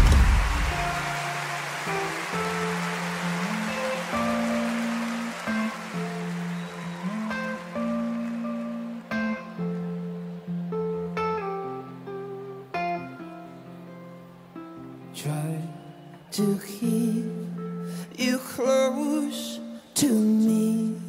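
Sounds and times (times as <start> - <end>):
guitar picked notes: 0.0 - 21.0.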